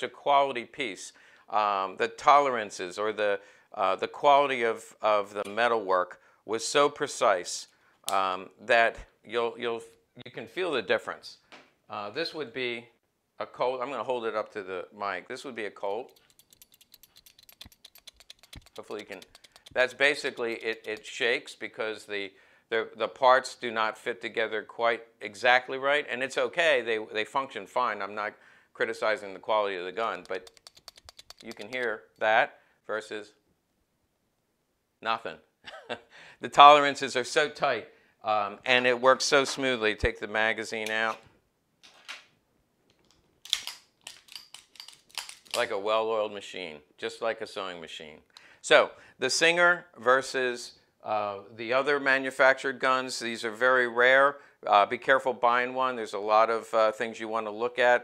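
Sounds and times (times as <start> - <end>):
pistol parts rattling: 16.1 - 21.2, 30.2 - 32.0, 42.9 - 45.7.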